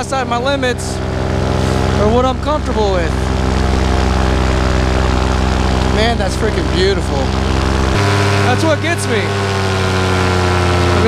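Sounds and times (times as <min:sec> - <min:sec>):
paramotor engine and propeller: 0:00.0 - 0:11.0.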